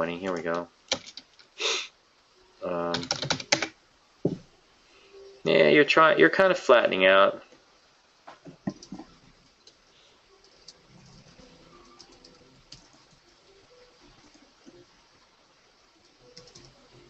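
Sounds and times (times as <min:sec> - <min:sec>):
faint keyboard clicks: 0:11.8 - 0:13.1, 0:16.3 - 0:16.8.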